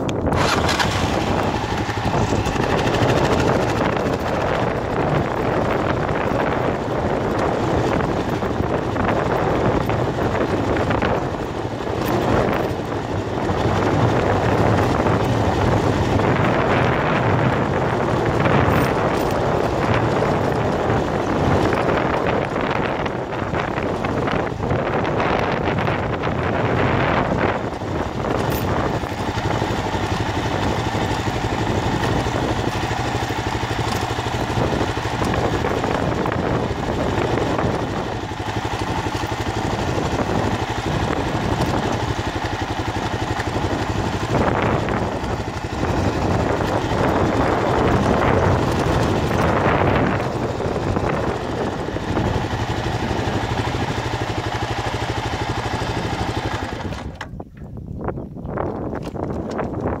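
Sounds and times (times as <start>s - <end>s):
motorcycle engine running: 0.0s - 60.0s.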